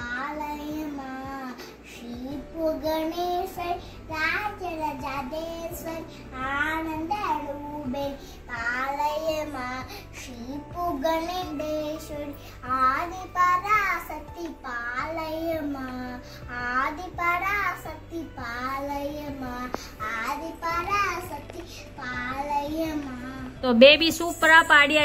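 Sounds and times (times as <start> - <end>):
girl singing a devotional song: 0.0 - 23.6.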